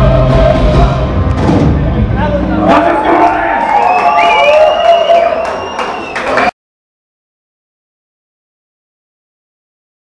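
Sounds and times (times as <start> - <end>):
crowd cheering and shouting: 0.0 - 6.5.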